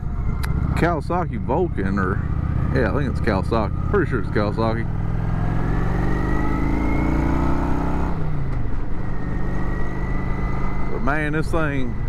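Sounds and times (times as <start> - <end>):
motorcycle engine running: 0.0 - 6.6.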